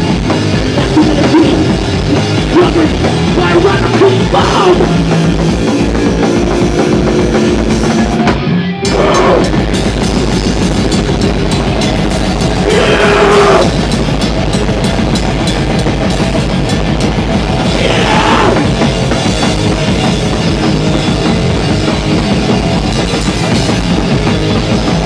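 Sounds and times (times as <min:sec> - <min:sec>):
fast drumming: 0:00.0 - 0:25.0
punk band playing loud: 0:00.0 - 0:25.0.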